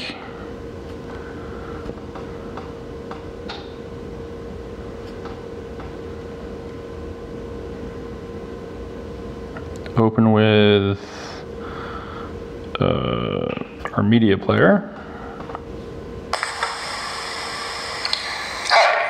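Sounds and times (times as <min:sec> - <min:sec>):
steady room hum: 0:00.0 - 0:19.0.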